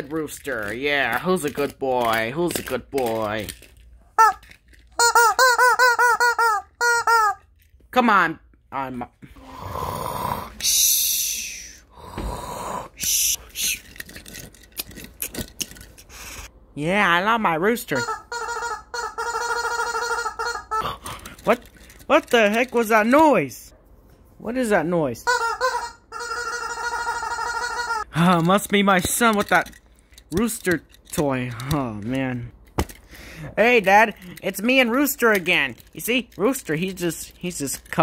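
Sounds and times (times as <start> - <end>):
rubber chicken toy squeaking: 4.2 - 7.5, 17.9 - 20.9, 25.2 - 28.1.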